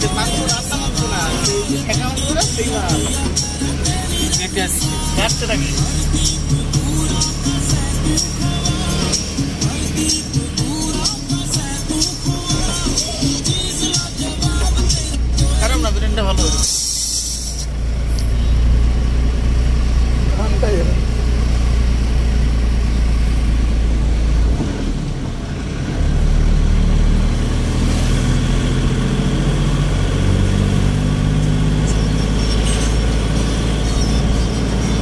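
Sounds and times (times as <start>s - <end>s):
vehicle engine and road noise: 0.0s - 35.0s.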